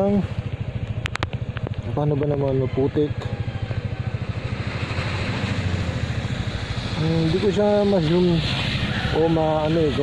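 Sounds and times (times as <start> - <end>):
scooter engine running: 0.0 - 10.0.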